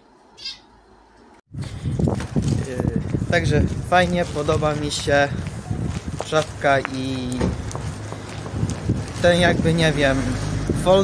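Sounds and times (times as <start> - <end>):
outdoor street noise: 0.0 - 11.0
small animal high-pitched cry: 0.4 - 0.7.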